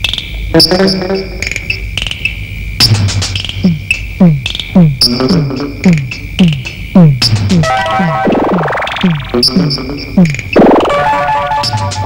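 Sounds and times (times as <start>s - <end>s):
chirping electronic pulses: 0.0s - 12.0s
electronic drum hits: 1.4s - 12.0s
high electronic tone: 3.6s - 12.0s.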